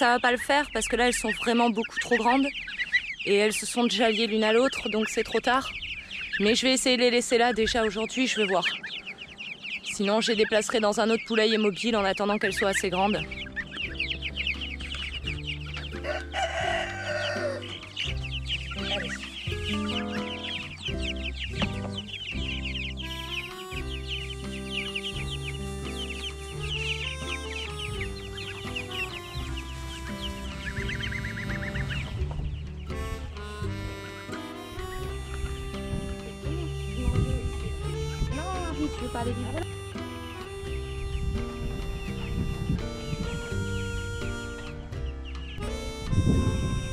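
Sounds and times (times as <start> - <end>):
chicks peeping: 0.0 - 46.9
background music with bass line: 12.4 - 46.9.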